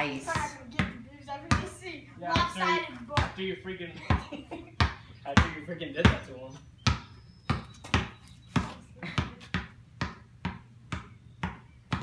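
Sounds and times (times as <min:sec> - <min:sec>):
basketball bouncing on concrete: 0:00.0 - 0:12.0.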